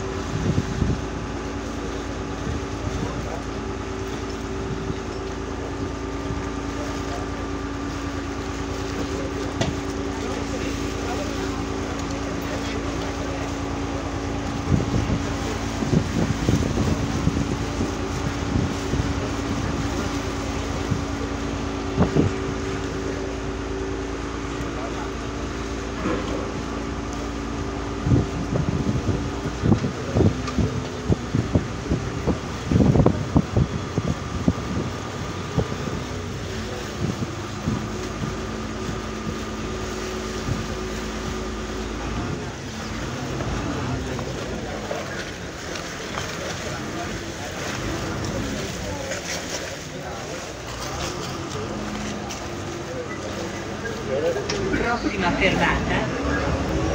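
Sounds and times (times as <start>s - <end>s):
diesel engine humming: 0.0s - 56.9s
water rushing along hull: 0.0s - 56.9s.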